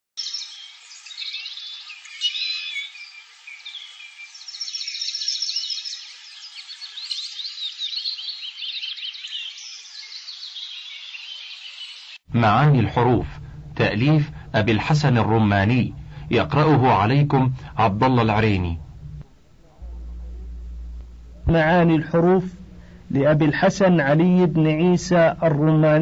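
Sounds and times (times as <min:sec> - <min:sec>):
small birds chirping and trilling: 0:00.2 - 0:12.3.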